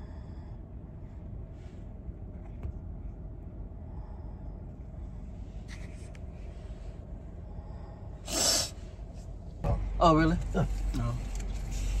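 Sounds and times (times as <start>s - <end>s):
car engine idling hum: 0.0s - 12.0s
breathy snort: 8.2s - 8.8s.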